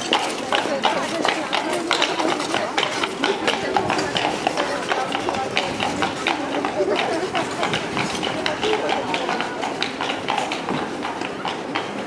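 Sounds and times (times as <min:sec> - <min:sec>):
horse hooves clopping on cobblestones: 0:00.0 - 0:12.0
people's voices: 0:00.0 - 0:12.0.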